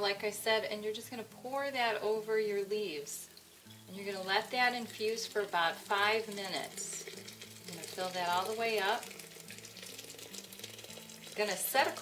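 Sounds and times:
hot water pouring into teapot: 0.1s - 12.0s.

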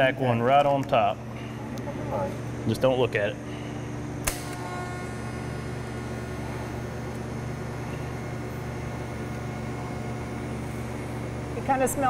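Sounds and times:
welding arc humming: 0.0s - 12.0s
welding arc striking crack: 4.2s - 4.9s.

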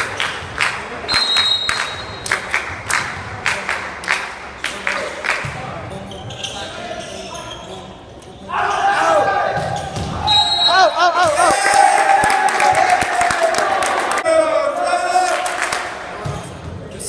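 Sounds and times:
people shouting and cheering: 8.5s - 15.9s.

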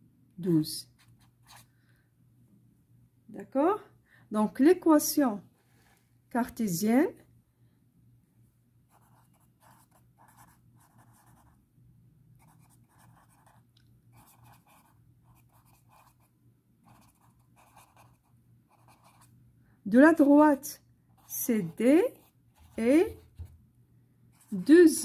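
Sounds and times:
pen scratching on paper: 8.9s - 11.6s, 12.4s - 19.3s.

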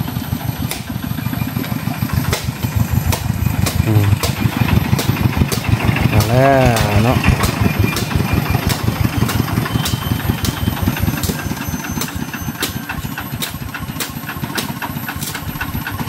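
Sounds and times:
walking tractor diesel engine clattering: 0.0s - 16.0s.

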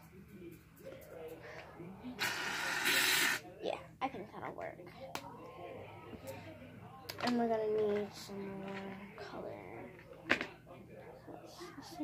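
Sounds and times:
aerosol can spraying hiss: 2.2s - 3.4s.

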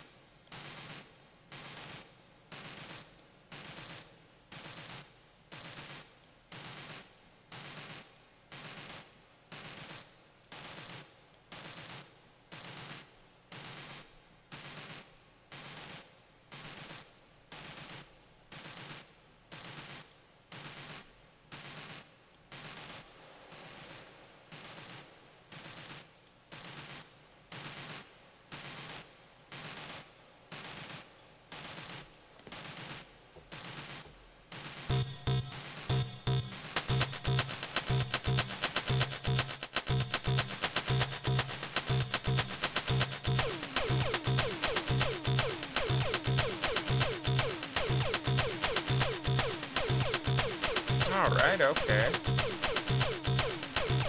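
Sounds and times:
looped electronic beat: 34.9s - 54.0s.

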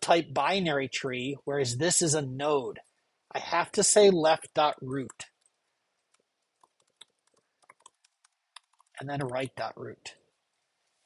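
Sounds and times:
keyboard typing clicks: 5.0s - 9.5s.

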